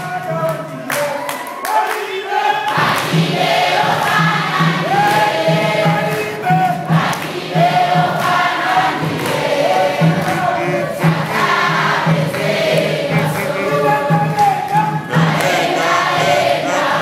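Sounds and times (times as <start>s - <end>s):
congregation singing gospel: 0.0s - 17.0s
steady low beat: 3.2s - 17.0s.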